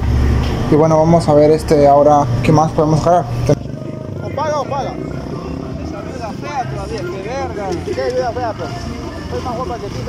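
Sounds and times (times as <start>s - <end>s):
indistinct voices: 0.0s - 10.0s.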